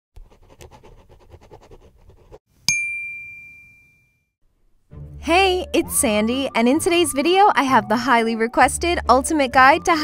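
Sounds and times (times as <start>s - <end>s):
pen scribbling: 0.2s - 2.4s
bright chime ding: 2.7s - 4.3s.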